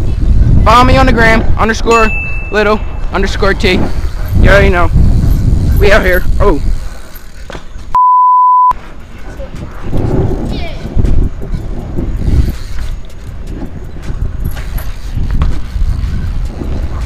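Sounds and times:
bicycle riding on asphalt: 0.0s - 2.0s, 2.8s - 8.0s, 8.8s - 17.0s
wind rumble on microphone: 0.0s - 7.1s, 8.8s - 17.0s
censor bleep: 8.0s - 8.8s.

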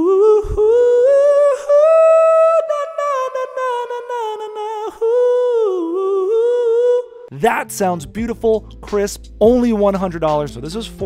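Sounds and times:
man singing wordless vocal run: 0.0s - 11.0s.

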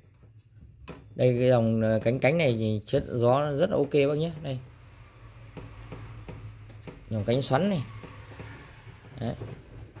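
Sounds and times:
hand rubbing metal fan grille: 3.2s - 10.0s.

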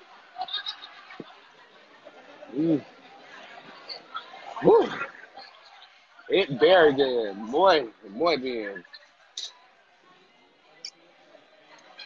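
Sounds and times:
faint distant voices: 0.0s - 12.0s.

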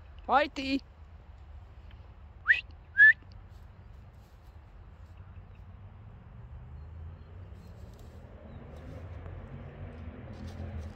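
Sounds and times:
person whistling upward notes: 2.5s - 3.2s.

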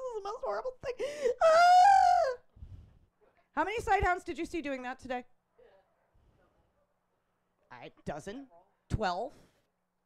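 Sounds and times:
woman wailing moan: 1.2s - 2.5s.

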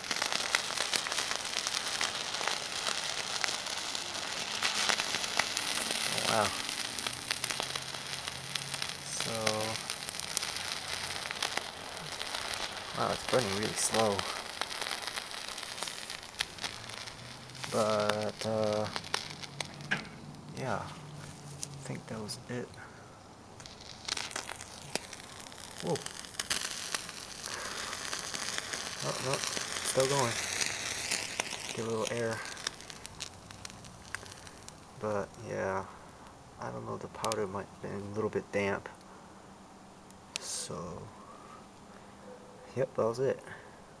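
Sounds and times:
sharp pops: 0.0s - 23.0s, 23.6s - 36.3s
flare crackling hiss: 0.0s - 44.0s.

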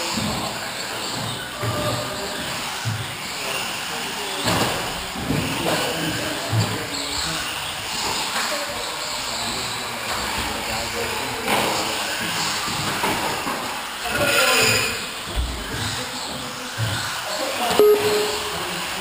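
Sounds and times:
indistinct chatter in echoing hall: 0.0s - 19.0s.

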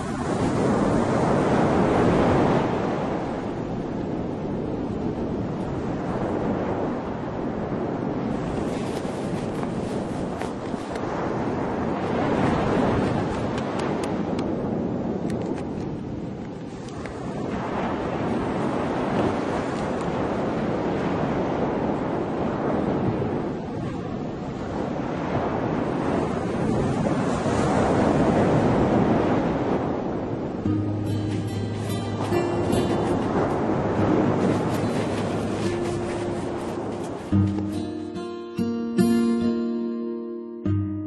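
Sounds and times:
ocean surf on sandy beach: 0.0s - 40.4s.

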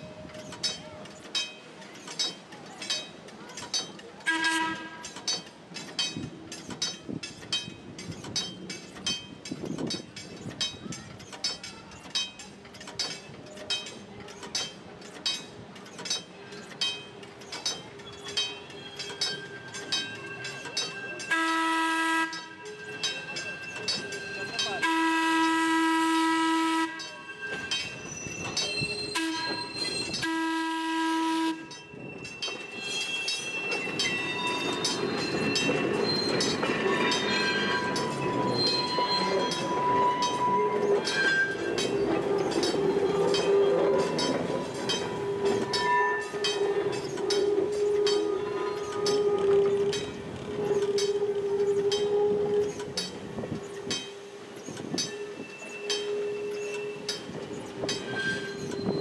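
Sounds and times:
electric train rumbling past: 0.0s - 59.0s
rail joints clicking: 0.0s - 59.0s
train horn blasts: 4.3s - 5.2s, 21.3s - 22.6s, 24.8s - 27.1s, 29.2s - 29.6s, 30.2s - 31.7s, 47.4s - 52.8s
wheels squealing on curve: 45.3s - 53.0s, 54.6s - 59.0s.

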